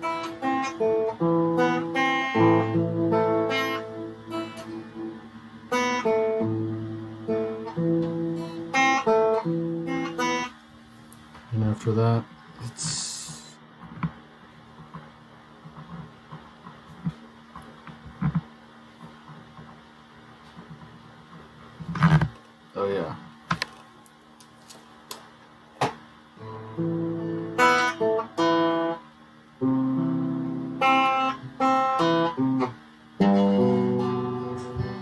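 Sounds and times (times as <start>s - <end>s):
electric guitar chords and notes: 0.0s - 10.6s, 26.4s - 35.0s
guitar handling clicks: 4.4s - 4.8s.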